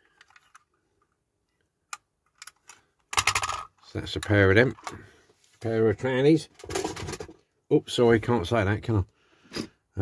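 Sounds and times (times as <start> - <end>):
metal toy vans clicking: 2.2 - 5.0
toys rattling on a cutting mat: 2.4 - 3.8.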